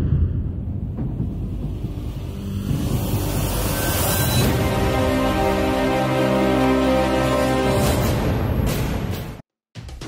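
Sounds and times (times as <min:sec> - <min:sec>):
low rumble: 0:00.0 - 0:04.7
sustained music chords: 0:01.4 - 0:08.5.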